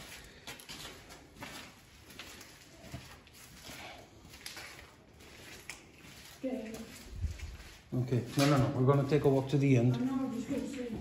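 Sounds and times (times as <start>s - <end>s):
footsteps on gritty floor: 0.0s - 11.0s.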